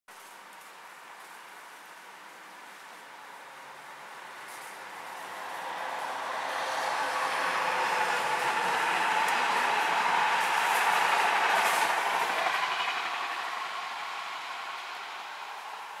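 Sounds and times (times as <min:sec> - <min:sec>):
train rumbling past: 0:03.8 - 0:16.0
sharp clicks of train wheels: 0:04.5 - 0:16.0.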